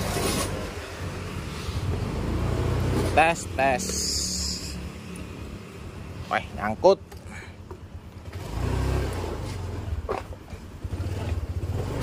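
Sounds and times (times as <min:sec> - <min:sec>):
scooter engine running low: 0:09.6 - 0:12.0.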